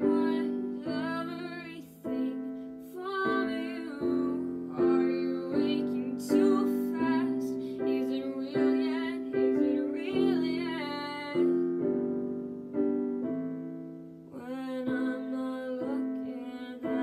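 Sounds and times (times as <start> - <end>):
piano chords: 0.0 - 17.0.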